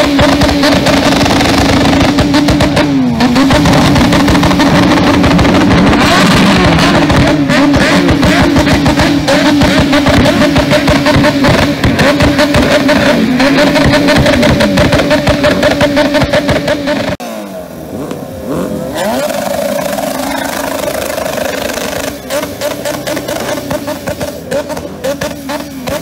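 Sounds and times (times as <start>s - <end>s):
motorcycle engine revving: 0.0s - 26.0s.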